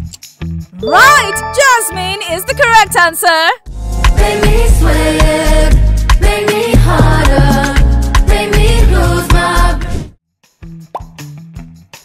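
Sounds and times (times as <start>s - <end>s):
upward bloop effect: 0.8s - 3.0s
soft jingle music: 0.8s - 5.2s.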